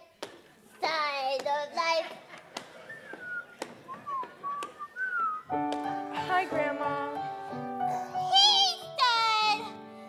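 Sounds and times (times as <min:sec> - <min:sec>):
person whistling sliding notes: 0:02.8 - 0:05.7.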